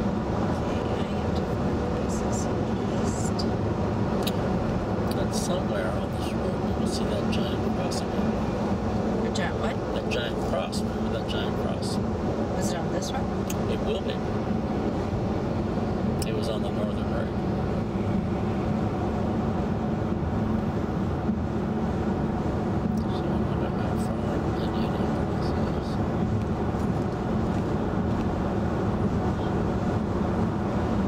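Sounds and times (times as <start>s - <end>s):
road and tyre noise in car cabin: 0.0s - 31.0s.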